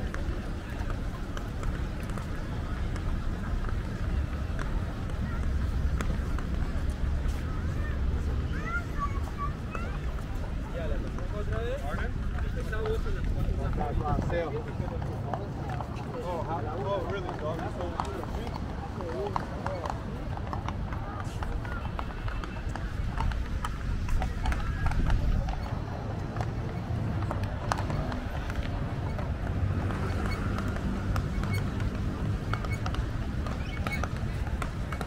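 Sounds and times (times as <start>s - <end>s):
footsteps on pavement: 0.0s - 35.0s
indistinct voices of passers-by: 0.0s - 35.0s.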